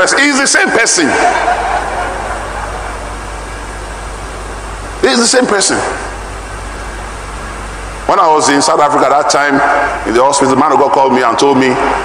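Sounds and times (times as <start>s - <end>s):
congregation crowd noise: 0.0s - 8.1s.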